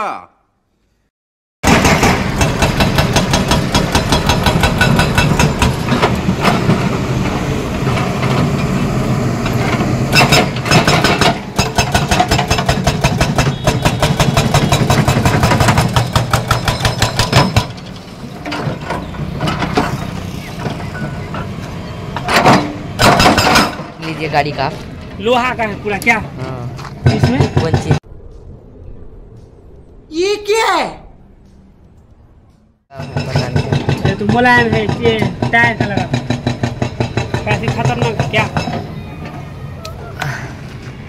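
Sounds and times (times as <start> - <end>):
hydraulic breaker hammering concrete: 1.6 - 6.8, 10.1 - 17.8, 22.3 - 23.9, 32.9 - 38.9
diesel engine under load: 1.6 - 28.1, 32.4 - 41.0.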